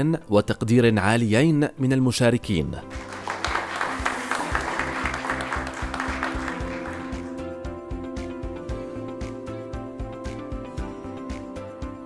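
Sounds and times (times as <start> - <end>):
background music with steady beat: 2.6 - 12.0
audience applauding: 2.9 - 7.4.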